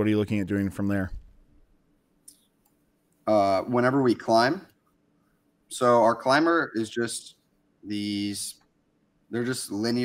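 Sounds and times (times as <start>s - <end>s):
man speaking: 0.0s - 1.2s, 3.2s - 4.8s, 5.7s - 8.7s, 9.3s - 10.0s.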